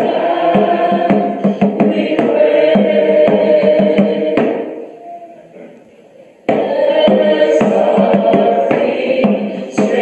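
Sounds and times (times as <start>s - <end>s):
sharp percussive hits: 0.0s - 5.0s, 6.5s - 10.0s
choir singing with accompaniment: 0.0s - 5.5s, 6.4s - 10.0s.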